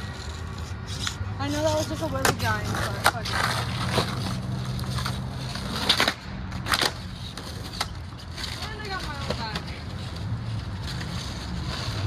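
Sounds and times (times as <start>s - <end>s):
skateboard clacks: 0.0s - 12.0s
skateboard wheels rolling on concrete: 0.0s - 12.0s.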